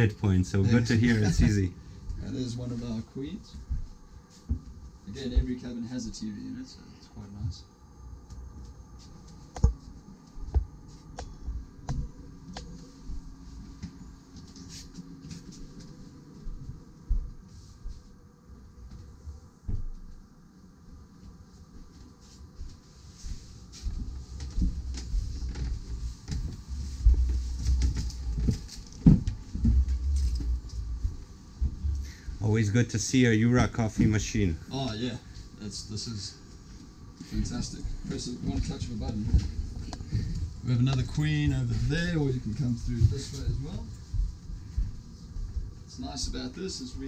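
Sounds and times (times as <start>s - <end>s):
faint steady hum: 0.0s - 47.0s
footsteps: 1.4s - 5.7s, 8.2s - 20.3s, 21.1s - 32.7s, 36.5s - 47.0s.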